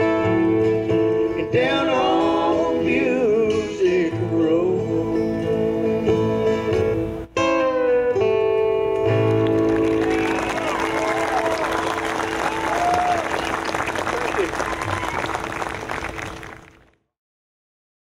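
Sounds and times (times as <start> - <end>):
acoustic guitars chord: 0.0 - 16.7
audience applause: 9.2 - 16.9
audience whoops and cheers: 9.6 - 16.7.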